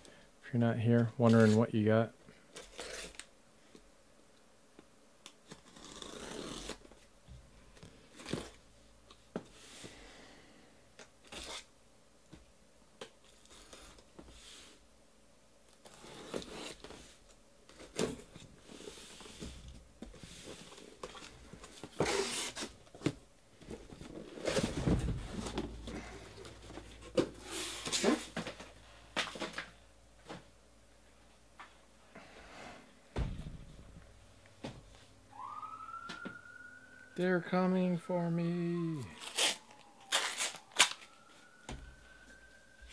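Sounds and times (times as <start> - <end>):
cardboard scraping and rustling: 15.8 - 29.6
siren: 35.3 - 42.9.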